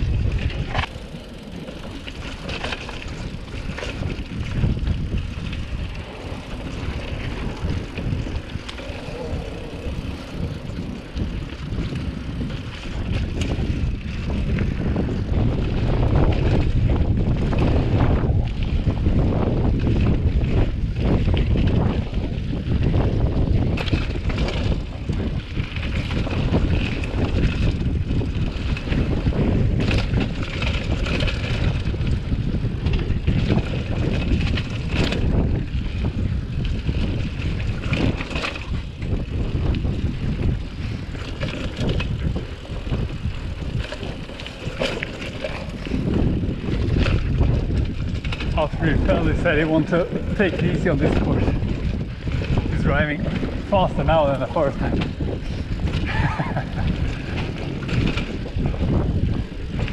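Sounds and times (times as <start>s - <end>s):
tyres on dirt: 0.0s - 22.0s, 22.8s - 59.9s
bike knocks and rattles: 0.0s - 59.9s
wind on microphone: 0.0s - 59.9s.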